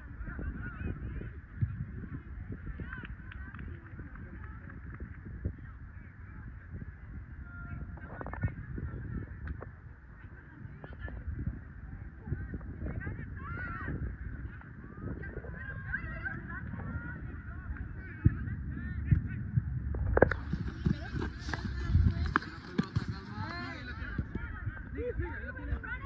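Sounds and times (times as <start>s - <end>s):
soccer ball kicks: 20.2s - 24.9s.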